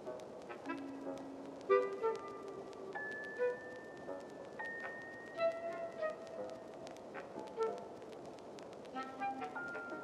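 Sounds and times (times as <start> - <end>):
faint scattered clicks: 0.0 - 10.0.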